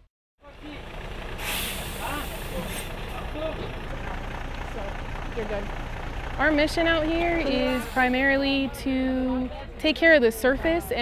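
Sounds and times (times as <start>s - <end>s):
truck engine idling: 0.4s - 11.0s
air release hiss: 1.4s - 3.0s
background voices: 1.8s - 11.0s.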